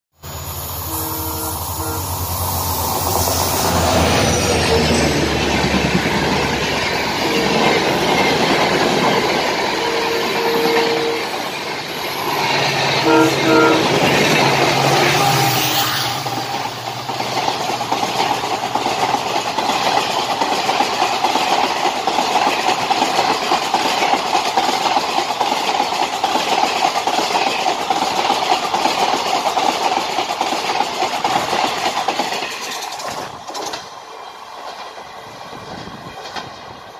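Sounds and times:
train rushing past: 0.2 - 36.9
wheels clattering over rail joints: 16.4 - 36.8.

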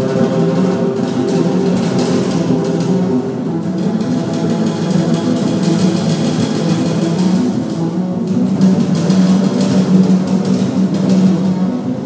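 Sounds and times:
double basses playing jazz: 0.0 - 12.0.

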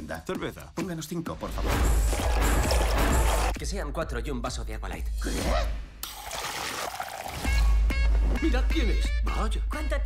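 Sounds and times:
water pouring into a glass: 2.0 - 3.6, 6.0 - 7.6.

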